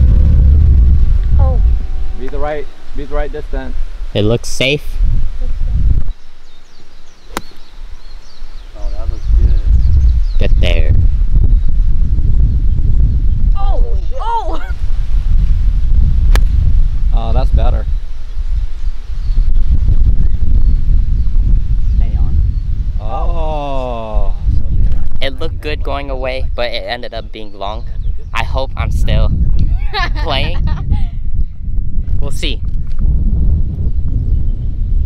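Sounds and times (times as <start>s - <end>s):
wind buffeting microphone: 0.0s - 35.0s
golf club striking ball: 7.2s - 7.7s, 16.3s - 16.6s
low voices: 23.0s - 24.8s.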